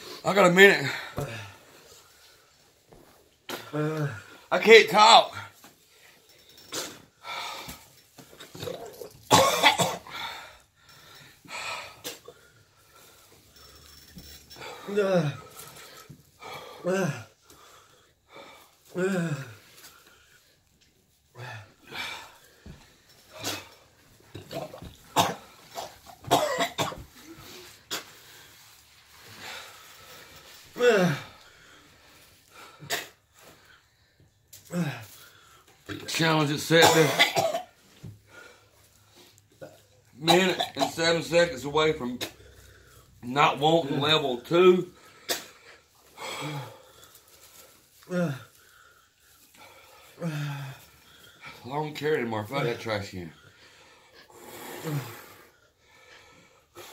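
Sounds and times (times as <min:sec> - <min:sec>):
man coughing harshly: 0:08.6 - 0:10.2, 0:24.4 - 0:27.0, 0:35.9 - 0:37.8, 0:40.2 - 0:41.3.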